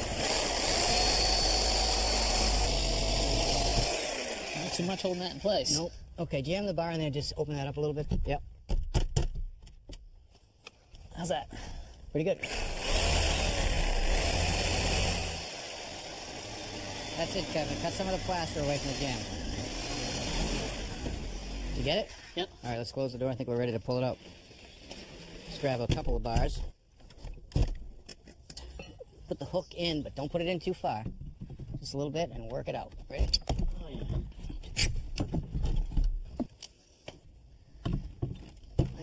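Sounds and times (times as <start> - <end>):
power tool running with low drone: 0.0 - 5.4, 12.4 - 21.9.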